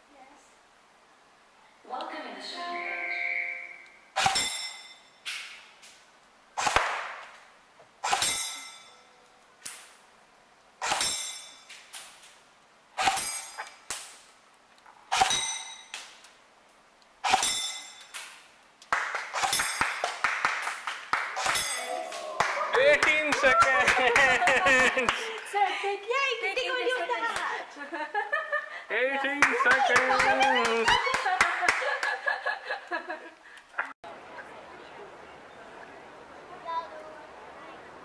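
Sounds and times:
metal target ringing ding: 4.3s - 5.2s, 15.3s - 15.9s, 17.4s - 18.1s, 21.6s - 22.0s
rifle shots cracking: 6.6s - 7.2s.

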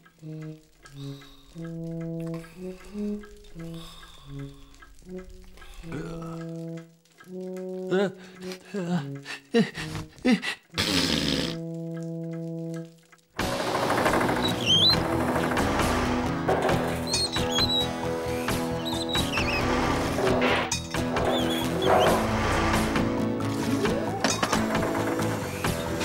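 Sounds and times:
lively background music: 10.8s - 26.0s.

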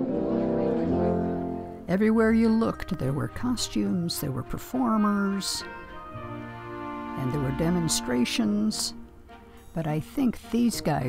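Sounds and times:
brass band playing low chords: 0.0s - 9.6s.

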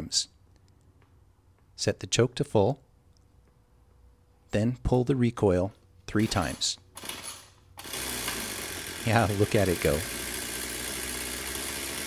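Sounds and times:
string trimmer engine starting: 6.2s - 12.0s.

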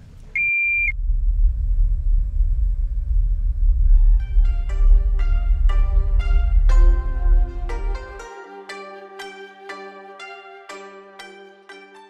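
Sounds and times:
airliner cabin rumble: 0.0s - 8.2s.

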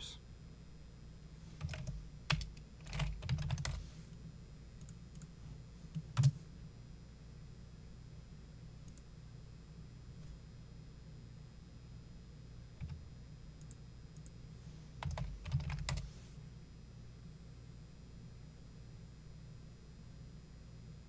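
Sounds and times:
keyboard keystrokes: 1.6s - 3.8s, 15.0s - 16.0s.

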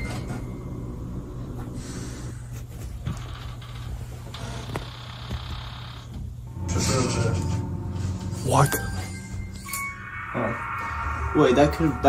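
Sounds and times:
low steady drone: 6.5s - 12.0s.

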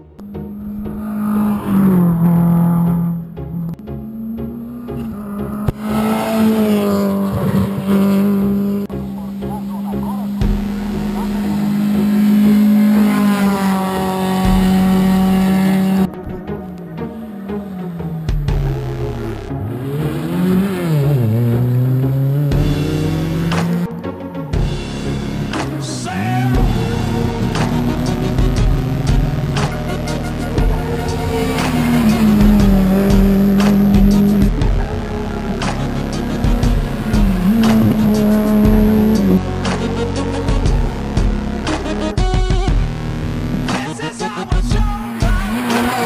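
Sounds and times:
rally car engine revving: 0.0s - 46.0s.

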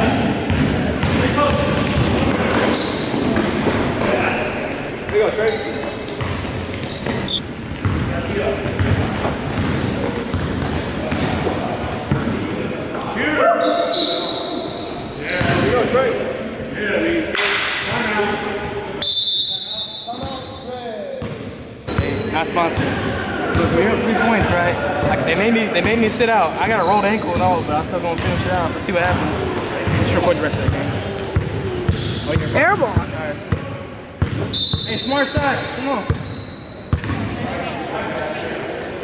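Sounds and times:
sneakers squeaking: 0.0s - 15.9s, 18.6s - 39.0s
basketball bouncing: 0.4s - 4.0s, 6.2s - 11.4s, 29.1s - 34.5s, 36.9s - 37.4s.

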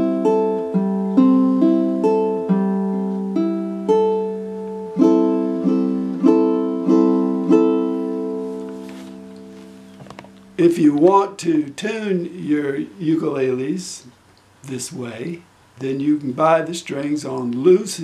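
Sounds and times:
ukulele plucked chords: 0.0s - 11.7s.

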